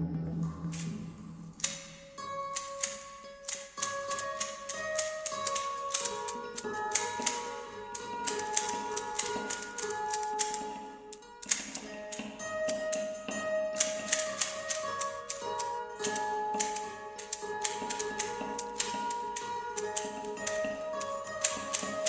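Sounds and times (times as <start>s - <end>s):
irregular rattling clicks: 1.6s - 22.0s.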